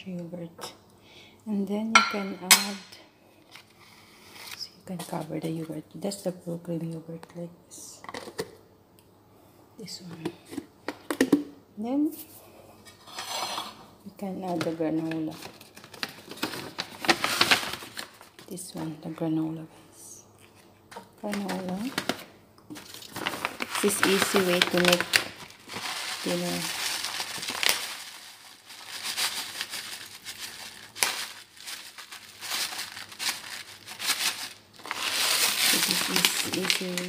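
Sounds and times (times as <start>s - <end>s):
snack pouch crinkling: 21.3s - 37.0s.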